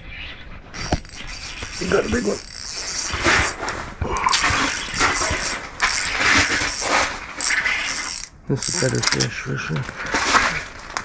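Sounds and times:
fishing reel gears whirring: 0:00.7 - 0:03.6, 0:04.3 - 0:09.0.

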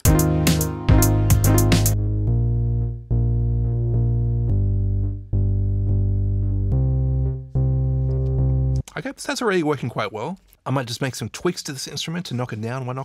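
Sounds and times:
sustained synth bass line: 0:00.0 - 0:08.8.

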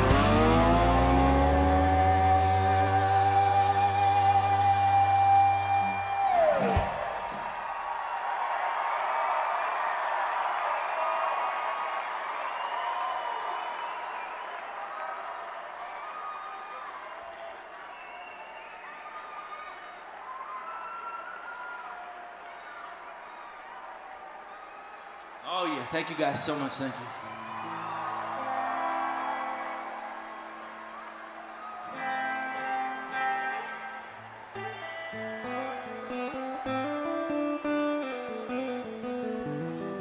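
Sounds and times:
electric slide guitar: 0:00.0 - 0:07.1, 0:31.9 - 0:40.0
band playing: 0:00.0 - 0:07.5, 0:27.7 - 0:40.0
crowd cheering and applauding: 0:00.0 - 0:38.8.

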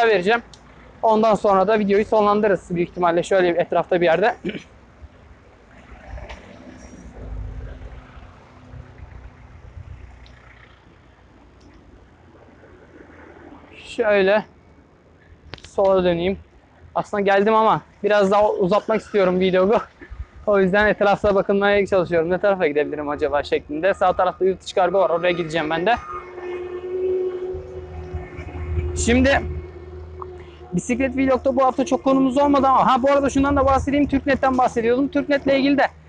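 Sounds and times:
faint traffic engine hum: 0:00.0 - 0:36.0
street noise: 0:00.0 - 0:36.0
wind and road noise rumble: 0:00.0 - 0:36.0.

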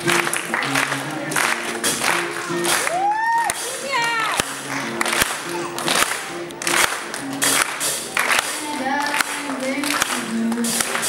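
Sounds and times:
acoustic guitar: 0:00.0 - 0:11.0
audience clapping: 0:00.0 - 0:11.0
audience whooping: 0:02.6 - 0:04.4.

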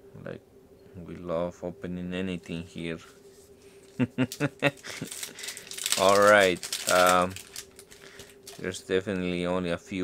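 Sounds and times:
foil pack crinkling torn open: 0:04.3 - 0:08.8.

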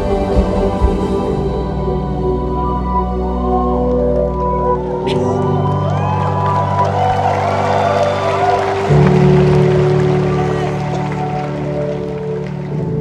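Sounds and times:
crowd voices: 0:00.0 - 0:13.0
sustained keyboard chords: 0:00.0 - 0:13.0.

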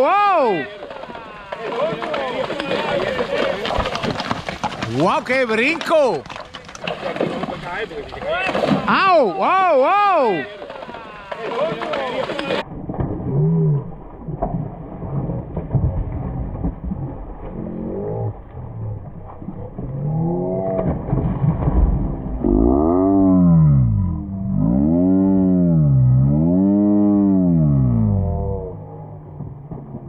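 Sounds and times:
hooves splashing in water: 0:00.0 - 0:23.3.

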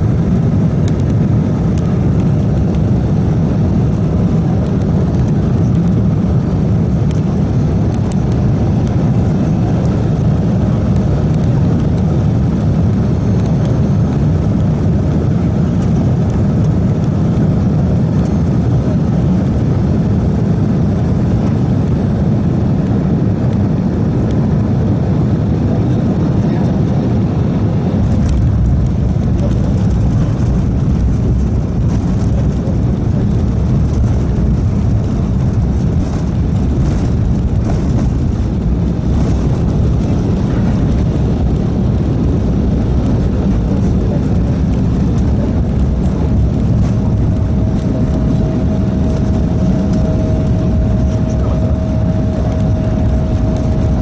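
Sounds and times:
jet engines roaring: 0:00.0 - 0:54.0
wheels rumbling on runway: 0:00.0 - 0:54.0.

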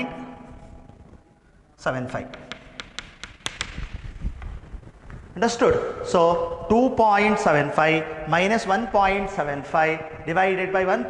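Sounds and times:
chalk tapping and scraping: 0:02.3 - 0:04.6.

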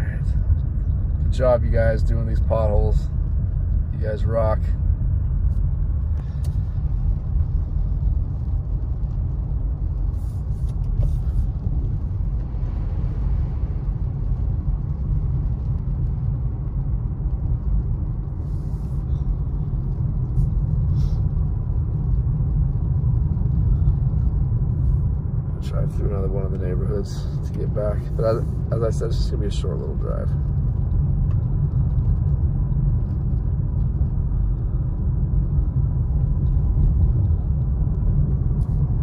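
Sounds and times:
car road and engine rumble: 0:00.0 - 0:39.0.

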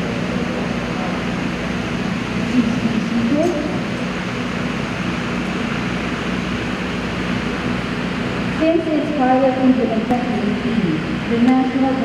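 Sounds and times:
low hum: 0:00.0 - 0:12.0
steady background hiss: 0:00.0 - 0:12.0.

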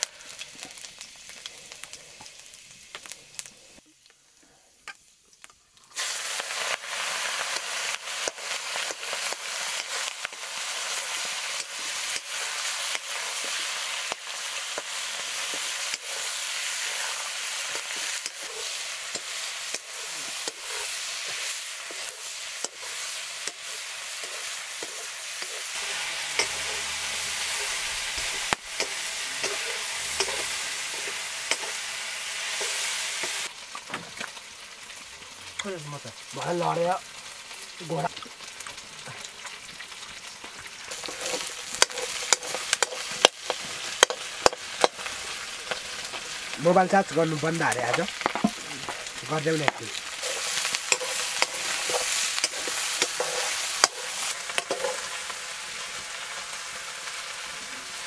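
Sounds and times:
food sizzling in hot oil: 0:00.0 - 0:58.0
metal spatula scraping pan: 0:16.9 - 0:31.9, 0:40.8 - 0:46.4, 0:50.1 - 0:55.3.

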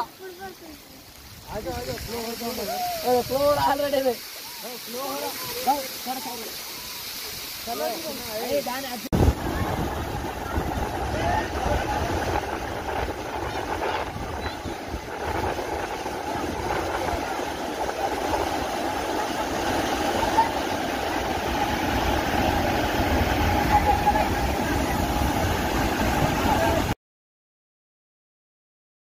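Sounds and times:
water rushing over weir: 0:00.0 - 0:27.0.

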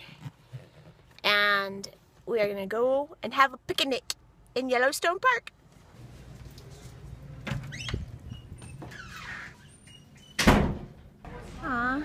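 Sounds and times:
loud door bang: 0:10.4 - 0:11.0.

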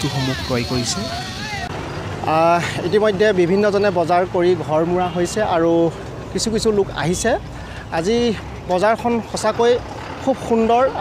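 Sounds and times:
man speaking loudly: 0:00.0 - 0:01.3
market crowd voices: 0:00.0 - 0:11.0.

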